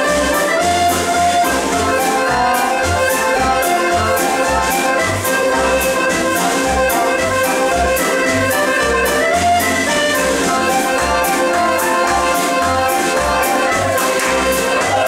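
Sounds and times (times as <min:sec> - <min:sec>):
bouncing bass beat: 0:00.0 - 0:15.0
dance band playing live: 0:00.0 - 0:15.0.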